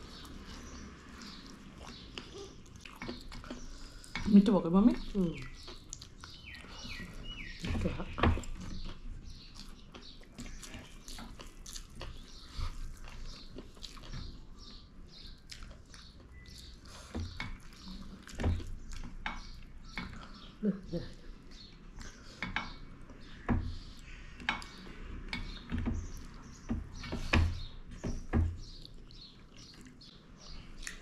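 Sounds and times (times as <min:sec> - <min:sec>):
close chewing and mouth clicks: 0:00.0 - 0:04.4, 0:05.0 - 0:07.7, 0:08.3 - 0:28.0, 0:28.6 - 0:31.0.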